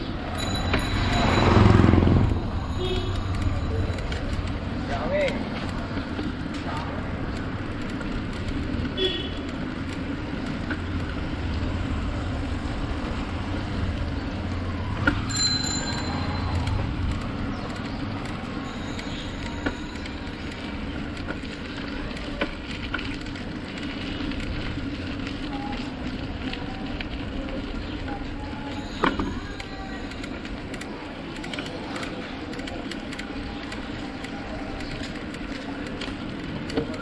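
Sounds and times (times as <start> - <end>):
bicycle tyre noise: 0.1 - 37.0.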